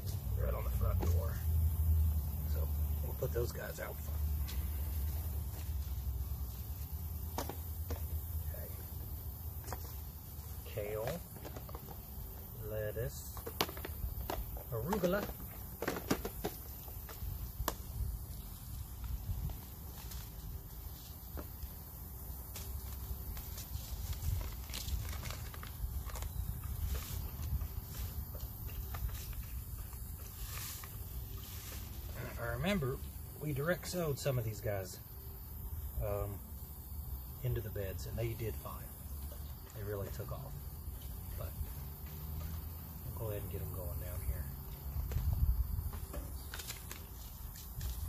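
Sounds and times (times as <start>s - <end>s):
paper packets handled: 3.4s - 21.8s, 22.5s - 32.4s, 45.9s - 48.0s.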